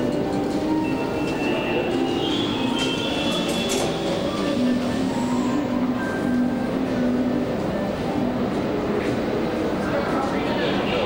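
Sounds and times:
train rumbling through station: 0.0s - 11.0s.

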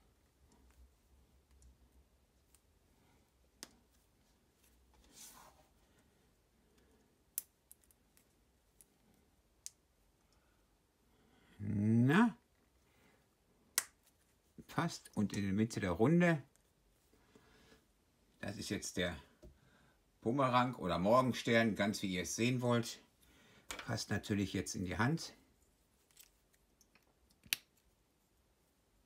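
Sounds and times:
plastic pieces snapping together: 26.1s - 27.8s.

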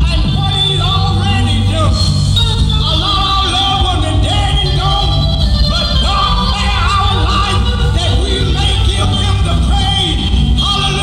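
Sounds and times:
bass guitar: 0.0s - 11.0s
drums: 0.0s - 11.0s
electric guitar: 0.0s - 11.0s
man singing lead vocal: 0.0s - 11.0s.

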